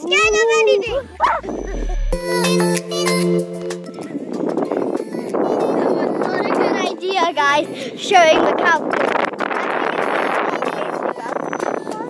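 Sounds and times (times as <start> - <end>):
wind buffeting microphone: 0.0 - 2.2, 3.9 - 12.0.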